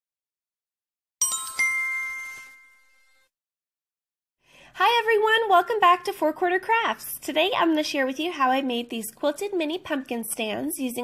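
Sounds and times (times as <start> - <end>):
bell-like chime ringing: 1.2 - 3.3.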